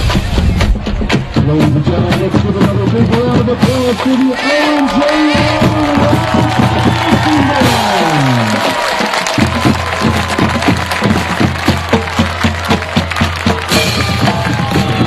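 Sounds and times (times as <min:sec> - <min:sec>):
marching band playing: 0:00.0 - 0:15.0
regular drum strikes: 0:00.0 - 0:15.0.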